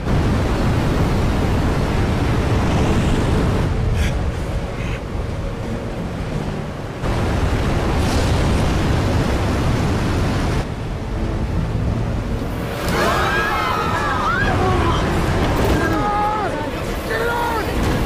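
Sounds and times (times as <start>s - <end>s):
rushing wind roar: 0.0s - 18.0s.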